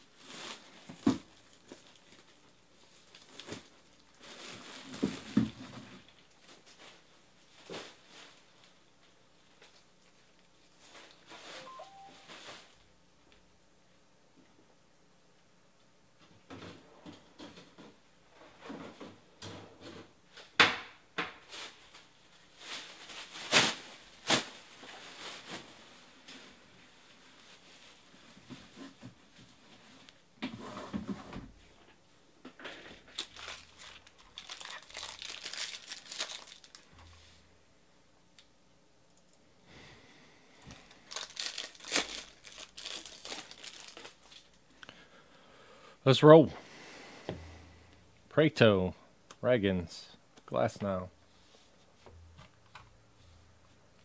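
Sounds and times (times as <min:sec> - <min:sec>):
foil wrappers crinkling and tearing: 0:00.0 - 0:08.6, 0:21.5 - 0:26.6, 0:32.8 - 0:37.1, 0:40.7 - 0:44.6.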